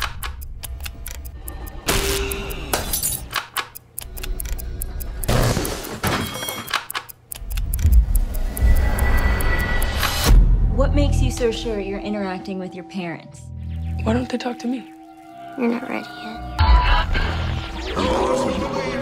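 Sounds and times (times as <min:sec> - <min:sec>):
sharp clicks: 0:00.0 - 0:06.0, 0:06.6 - 0:10.3.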